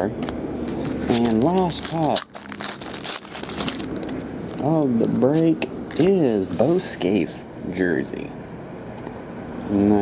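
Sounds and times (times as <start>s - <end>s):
foil wrapper crinkling: 1.0s - 4.7s.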